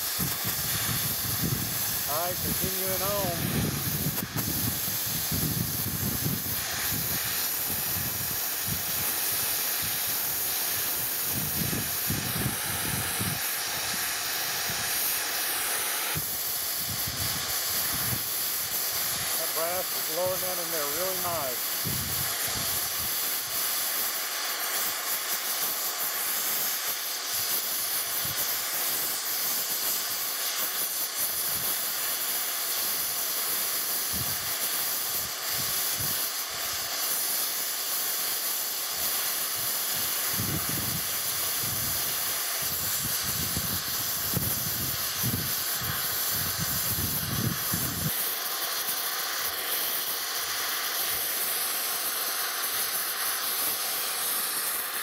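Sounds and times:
gas torch hissing: 0:00.0 - 0:55.0.

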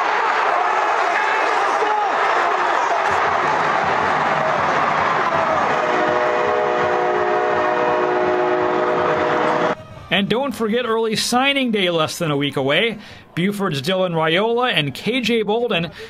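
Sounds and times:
stadium crowd noise: 0:00.0 - 0:16.0
horn sounding a chord: 0:05.7 - 0:09.8.

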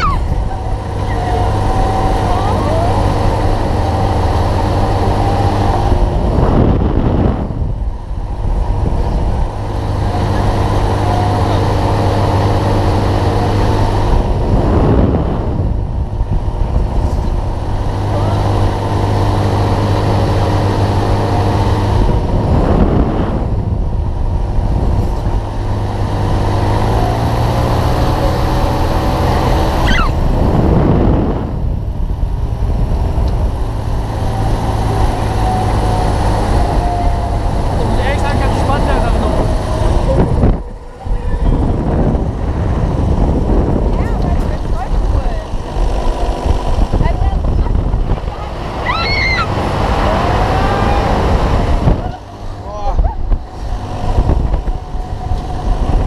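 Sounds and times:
ride motor hum: 0:00.0 - 0:56.0
wind rushing over microphone: 0:00.0 - 0:56.0.

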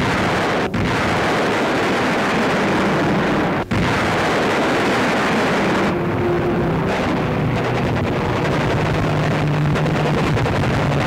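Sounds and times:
aircraft engine roar: 0:00.0 - 0:11.0.

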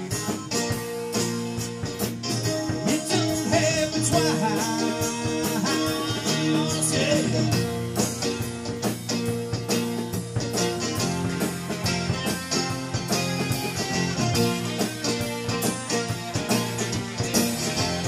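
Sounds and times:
acoustic guitar strumming chords: 0:00.0 - 0:18.0
electric guitar lead line: 0:00.0 - 0:18.0.

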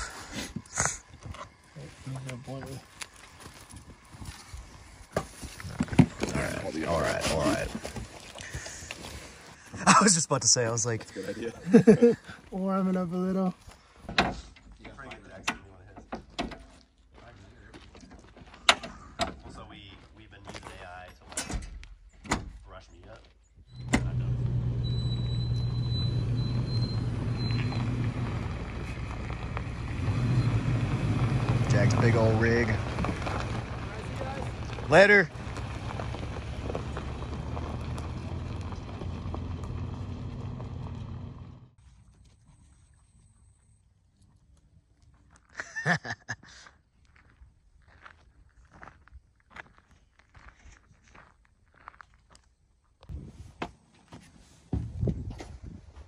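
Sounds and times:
vehicle engine running: 0:23.7 - 0:41.9.

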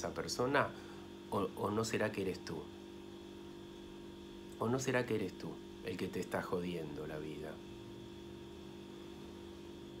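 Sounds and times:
faint hum of held tones: 0:00.0 - 0:10.0.

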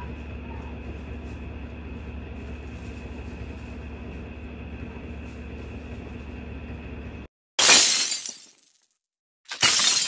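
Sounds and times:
glass shattering: 0:07.6 - 0:08.9, 0:09.5 - 0:10.0.

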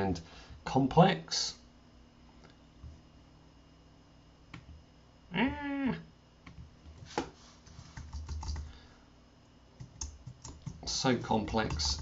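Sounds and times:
computer keyboard typing: 0:07.7 - 0:08.8, 0:09.8 - 0:12.0.

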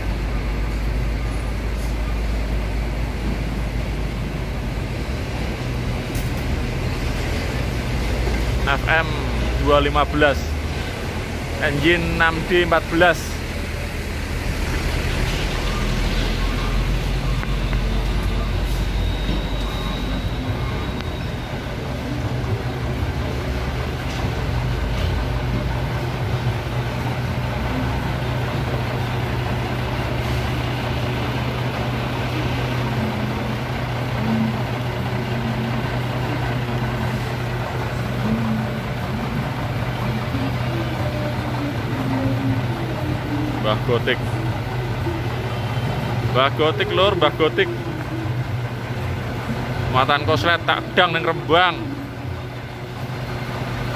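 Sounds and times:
diesel truck engine idling: 0:00.0 - 0:53.9.

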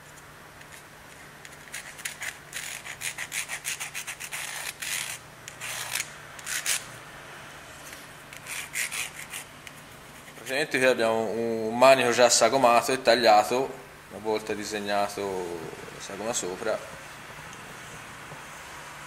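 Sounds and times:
steady low hum: 0:00.0 - 0:19.0
pencil scratching: 0:01.5 - 0:06.8, 0:08.4 - 0:09.5.

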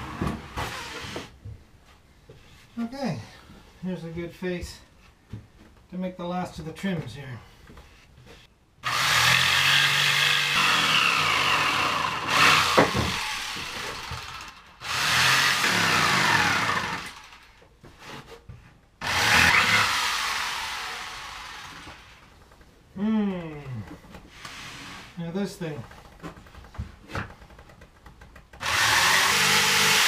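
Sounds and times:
circular saw cutting plywood: 0:08.8 - 0:17.4, 0:28.6 - 0:30.0.

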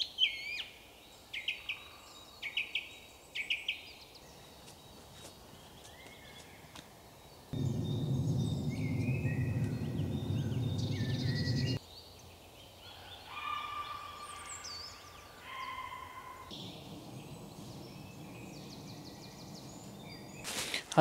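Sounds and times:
small birds singing and trilling: 0:00.0 - 0:21.0
loud low rumble: 0:07.6 - 0:11.8, 0:16.6 - 0:20.4.

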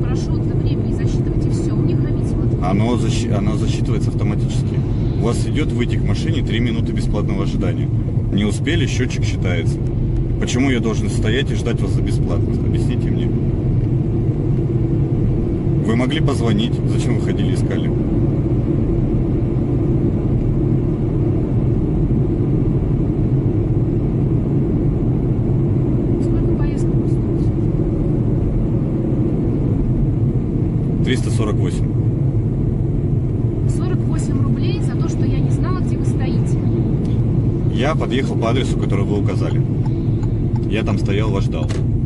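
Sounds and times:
car engine and tyres rumbling: 0:00.0 - 0:42.0.

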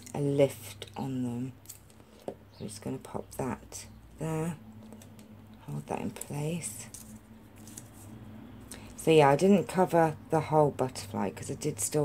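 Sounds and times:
low steady hum: 0:00.0 - 0:12.0
faint card handling: 0:04.8 - 0:08.2.

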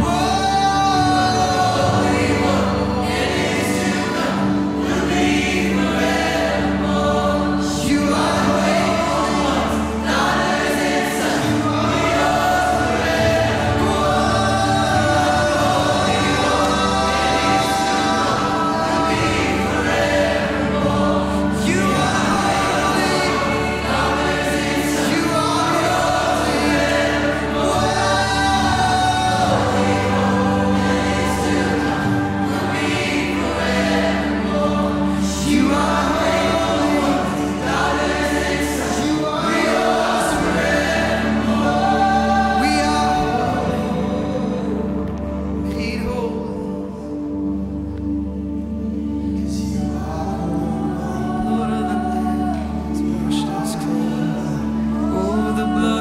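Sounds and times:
congregation singing: 0:00.0 - 0:56.0
low held accompaniment notes: 0:00.0 - 0:56.0.

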